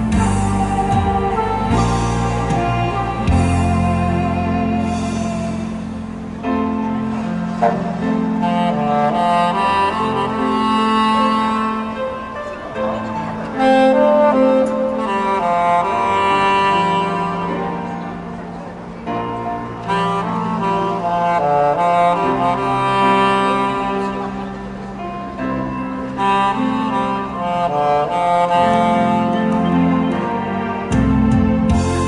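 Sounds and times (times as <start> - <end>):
backing track with strings: 0.0 - 32.0
saxophone slow melody: 0.0 - 32.0.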